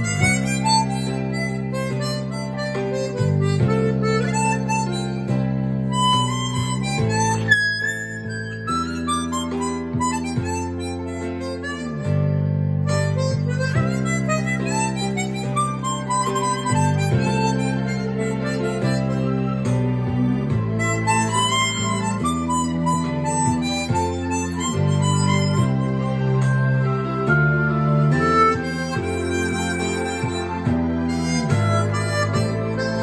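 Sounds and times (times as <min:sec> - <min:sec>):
harmonica playing slow melody: 0:00.0 - 0:33.0
sustained backing chords: 0:00.0 - 0:33.0.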